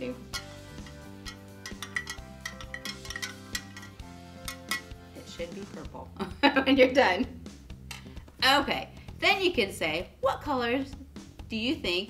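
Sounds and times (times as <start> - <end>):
soft background music: 0.0 - 12.0
metal spoon clinking against glass: 0.2 - 5.0.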